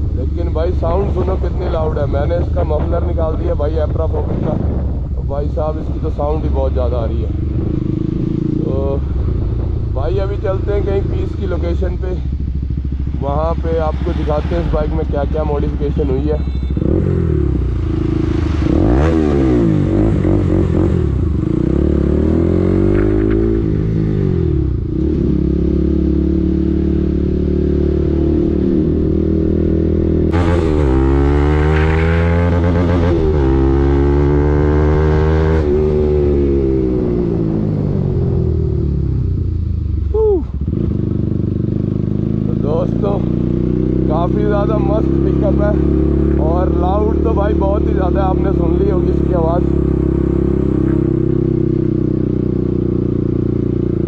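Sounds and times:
loud motorcycle engine revving: 6.2s - 39.5s, 40.5s - 54.0s.

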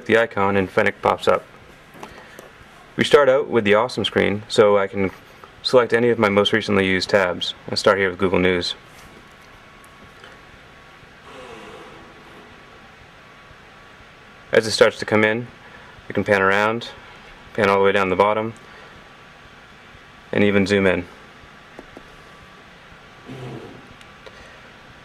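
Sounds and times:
faint steady high whine: 0.0s - 25.0s
steady low hiss: 0.0s - 25.0s
faint pitched murmur: 11.2s - 13.2s, 23.2s - 24.6s.

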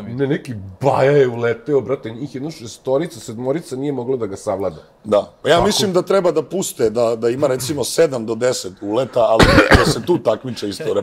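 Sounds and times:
men's conversation: 0.0s - 11.0s
man coughing: 9.3s - 10.2s.

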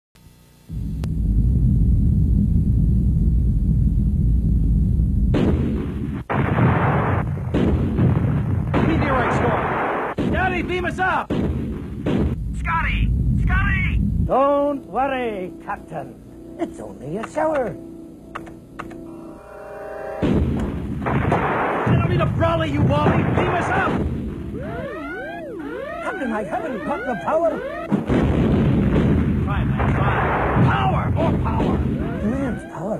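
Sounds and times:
deep rumble: 0.7s - 8.9s, 11.5s - 14.6s
loud explosion blasts: 0.7s - 14.4s, 20.2s - 25.0s, 27.8s - 32.7s
electronic sci-fi warbling siren: 13.1s - 29.0s, 29.7s - 32.9s
higher rising electronic sweeps: 24.2s - 28.0s, 31.8s - 32.9s.

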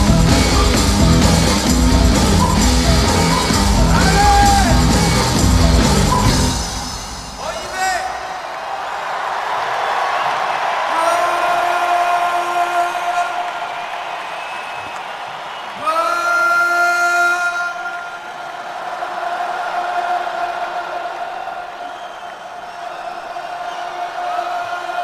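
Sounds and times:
stadium crowd cheering: 0.0s - 25.0s.

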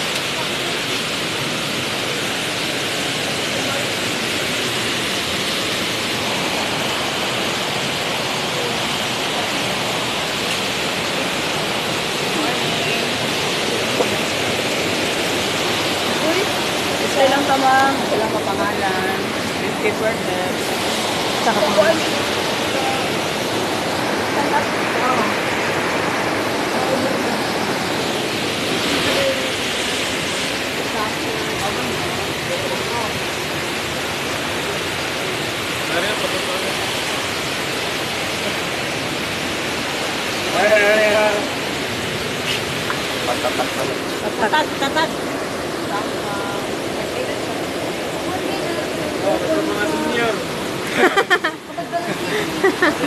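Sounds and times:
waterfall rushing: 0.0s - 53.0s.

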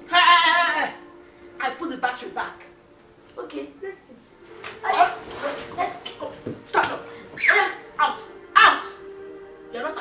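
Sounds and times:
person crying out: 7.4s - 9.0s.

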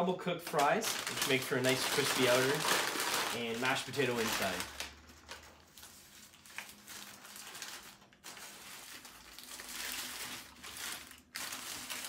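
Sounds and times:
paper wrapper crinkling: 0.4s - 12.0s.

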